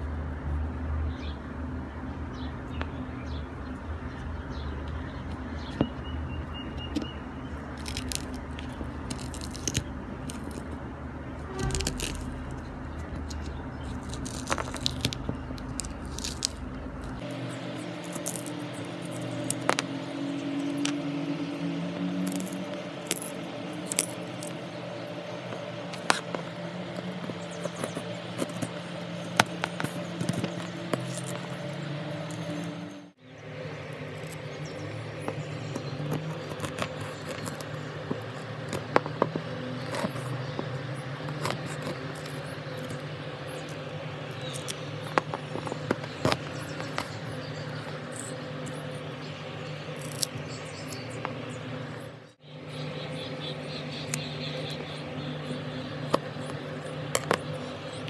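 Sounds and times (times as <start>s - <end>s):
low background hum: 0.0s - 58.0s
sharp crunchy clicks: 3.7s - 21.6s, 22.2s - 33.0s, 33.9s - 52.3s, 52.9s - 58.0s
knife cutting coconut husk: 7.8s - 10.8s, 11.6s - 21.2s, 25.4s - 32.8s, 35.2s - 49.0s.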